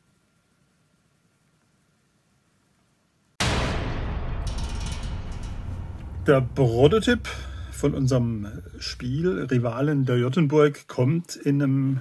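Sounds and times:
low rumble with crackling: 3.4 - 10.2.

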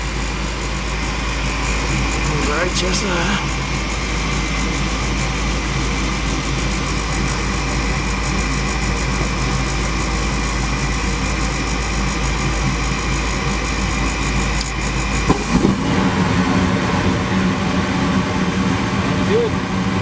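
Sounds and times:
furnace draft inducer motor hum: 0.0 - 20.0
gas burners lighting: 13.0 - 20.0.

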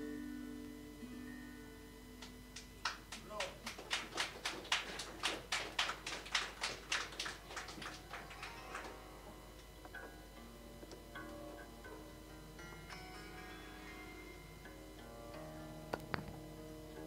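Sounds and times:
soft held instrument notes: 8.4 - 17.0.

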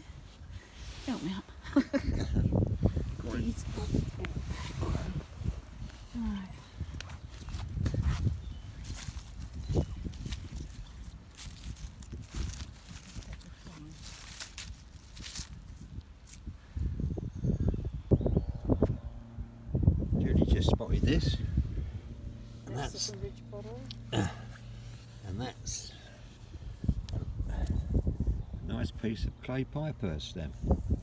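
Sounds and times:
footsteps on soil and grass: 7.1 - 16.5.

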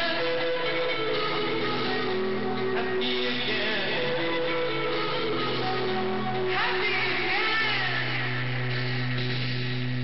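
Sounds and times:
high sliding wavering note: 0.0 - 10.0
live rock band playing: 0.0 - 10.0.

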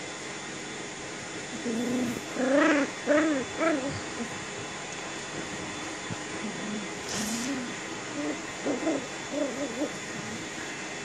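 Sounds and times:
puppy howling: 1.5 - 4.4, 6.4 - 10.6.

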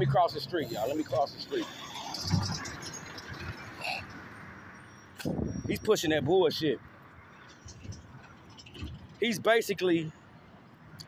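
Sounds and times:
street background noise: 0.0 - 11.0.

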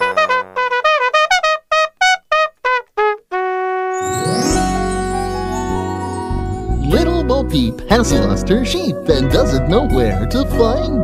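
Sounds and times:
trumpet playing bending notes: 0.0 - 8.3.

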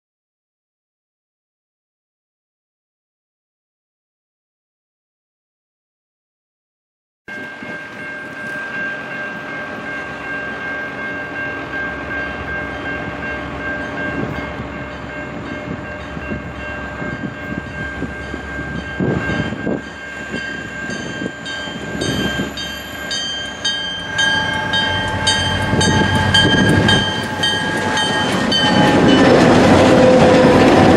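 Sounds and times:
diesel locomotive engines: 7.3 - 30.9
steady high-pitched tone: 7.4 - 30.9
train wheels clattering: 20.8 - 30.9.

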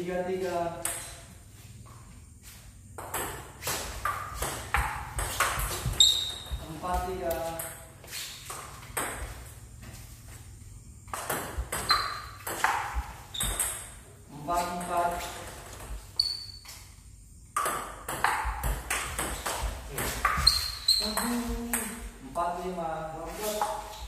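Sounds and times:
table tennis ball hitting paddles: 0.7 - 1.3, 3.0 - 9.5, 11.1 - 16.1, 17.5 - 22.1
ball bouncing on table: 3.0 - 7.8, 11.1 - 14.0, 17.6 - 22.0.

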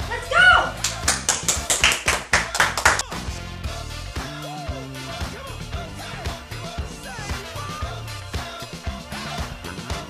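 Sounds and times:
background music: 0.0 - 10.0
hands clapping quickly: 0.8 - 3.3.

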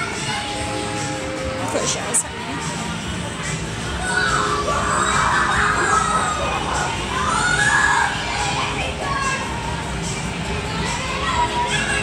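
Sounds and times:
children shouting and screaming: 3.9 - 9.8, 10.8 - 12.0.

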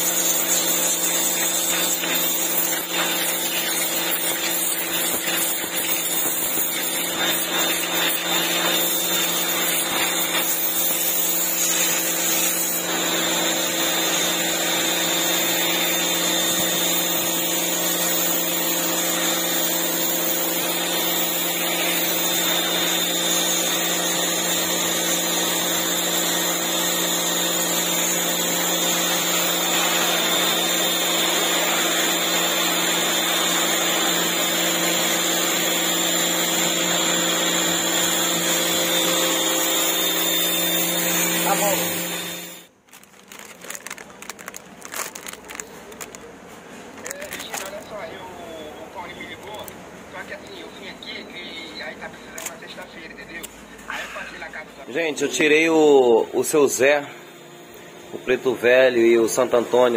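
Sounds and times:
water jet hissing: 0.0 - 42.8
pressure washer motor hum: 0.0 - 50.6.

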